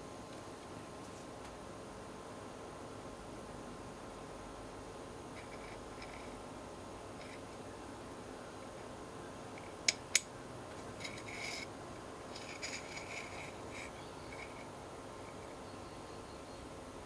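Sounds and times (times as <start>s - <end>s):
metal module scraping and rubbing: 5.3s - 6.4s, 7.2s - 7.6s, 10.8s - 11.7s, 12.3s - 15.6s.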